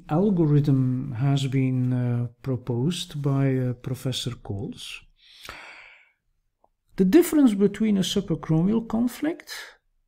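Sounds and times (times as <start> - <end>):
man breathing: 5.2 - 6.3.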